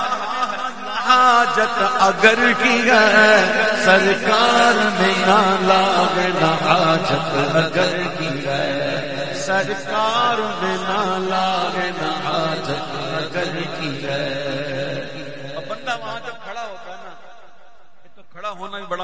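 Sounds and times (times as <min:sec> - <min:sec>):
chanted vocal drone: 0:00.0 - 0:17.2.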